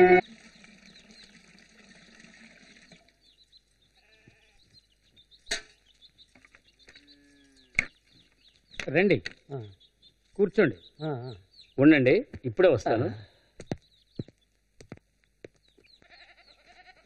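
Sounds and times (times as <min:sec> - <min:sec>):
village ambience: 0:02.0 - 0:14.4
goat bleat: 0:04.0 - 0:04.7, 0:16.0 - 0:17.0.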